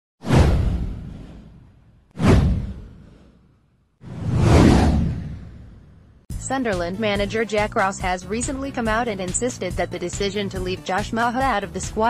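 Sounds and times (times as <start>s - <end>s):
deep boom: 0.2s - 3.3s, 4.0s - 6.2s
whoosh sound effect: 2.2s - 3.4s, 4.0s - 6.1s.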